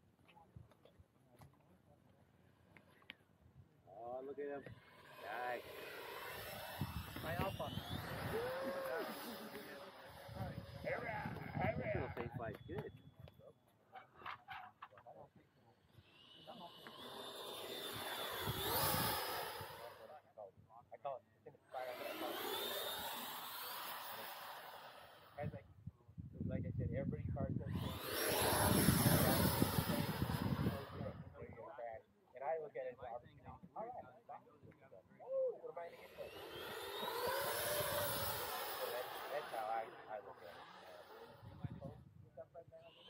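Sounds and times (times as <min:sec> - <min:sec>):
model jet whining past: 0:04.6 - 0:12.3, 0:15.9 - 0:20.2, 0:21.6 - 0:25.4, 0:27.7 - 0:31.4, 0:35.8 - 0:42.0.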